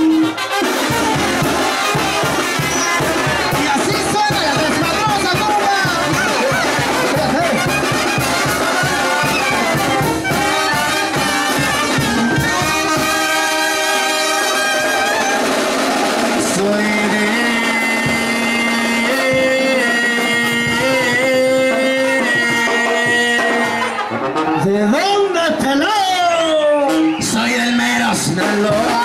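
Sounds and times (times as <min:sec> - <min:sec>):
brass band with drums playing: 0:00.0 - 0:29.0.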